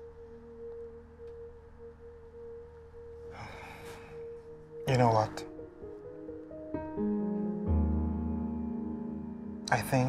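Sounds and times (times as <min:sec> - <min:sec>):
steady pure tone: 0:00.0 - 0:10.0.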